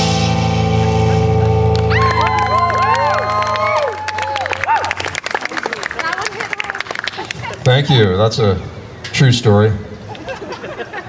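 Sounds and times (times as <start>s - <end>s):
electric guitar chord ringing: 0.0s - 2.5s
audience clapping: 1.4s - 7.8s
audience whooping cheers: 1.7s - 6.8s.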